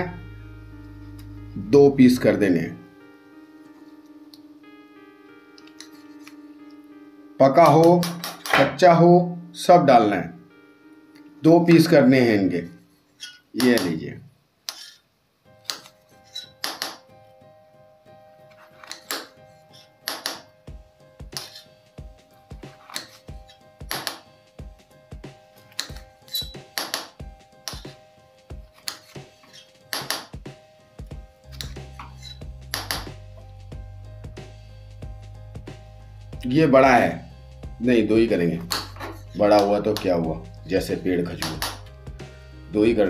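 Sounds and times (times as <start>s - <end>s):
background music with sustained tones: 0.0s - 14.2s, 14.8s - 43.0s
low bass: 31.5s - 36.7s, 40.1s - 43.0s.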